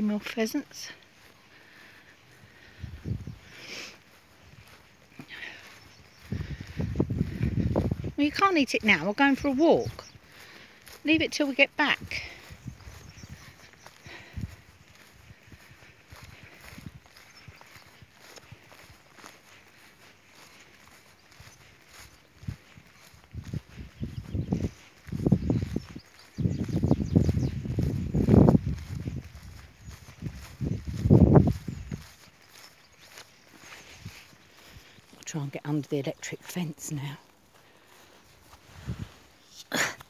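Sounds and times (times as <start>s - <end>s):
footsteps through long grass: 0.0s - 40.0s
wind rumbling on microphone: 2.3s - 3.7s, 4.4s - 35.2s, 38.4s - 39.4s.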